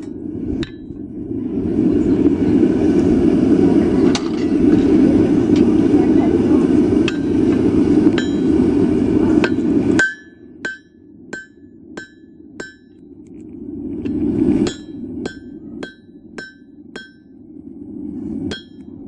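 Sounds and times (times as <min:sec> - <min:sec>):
hammer striking steel on anvil: 0:00.0 - 0:01.0, 0:07.1 - 0:07.3, 0:08.2 - 0:08.5, 0:09.4 - 0:13.0, 0:14.6 - 0:17.4, 0:18.5 - 0:19.0
loud rushing noise: 0:00.0 - 0:10.6, 0:13.7 - 0:16.4.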